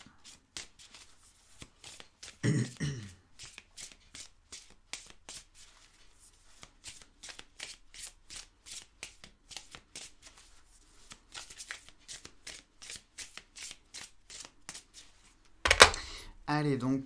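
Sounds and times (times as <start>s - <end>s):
cards being shuffled: 0.2s - 2.4s, 3.4s - 16.2s.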